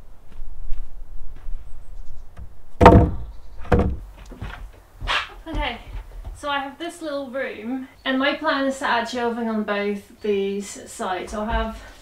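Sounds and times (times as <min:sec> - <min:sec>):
faint footsteps: 0:00.0 - 0:06.7, 0:11.2 - 0:12.0
light wooden knocks: 0:02.4 - 0:06.4, 0:11.3 - 0:12.0
boards thunking on wooden table: 0:02.8 - 0:04.6.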